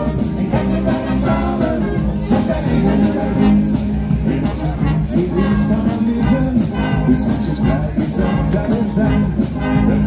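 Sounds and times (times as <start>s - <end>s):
fanfare band playing: 0.0s - 10.0s.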